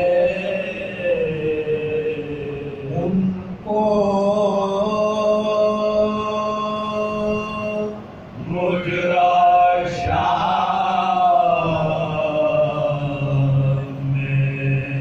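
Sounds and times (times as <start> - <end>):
men chanting together: 8.4 - 15.0.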